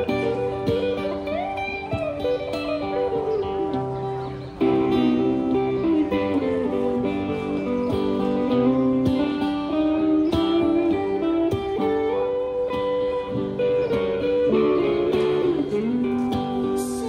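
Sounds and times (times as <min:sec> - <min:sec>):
acoustic guitar strummed chords: 0:00.0 - 0:17.0
electric guitar playing: 0:00.0 - 0:17.0.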